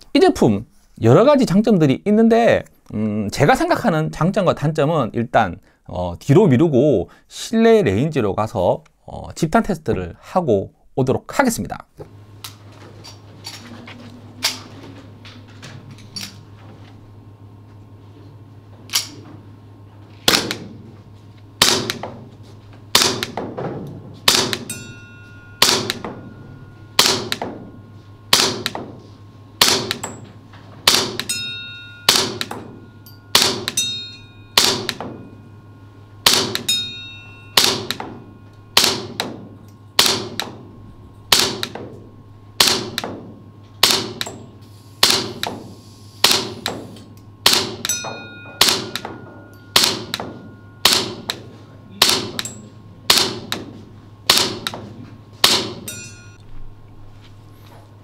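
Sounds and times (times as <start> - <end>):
low steady hum: 0.0 - 58.0
gunshots with metallic ring: 20.3 - 20.7, 21.6 - 22.1, 22.9 - 23.6, 24.3 - 29.0, 29.6 - 30.2, 30.8 - 35.5, 36.2 - 40.6, 47.4 - 51.4, 52.0 - 53.5.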